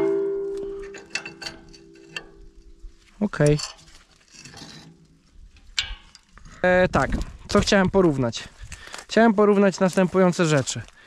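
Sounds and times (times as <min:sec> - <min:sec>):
steady metal ring: 0:00.0 - 0:06.3.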